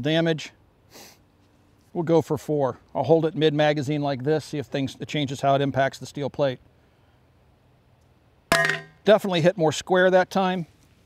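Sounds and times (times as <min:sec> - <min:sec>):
magazine clanging on steel plate: 0:08.5 - 0:09.0.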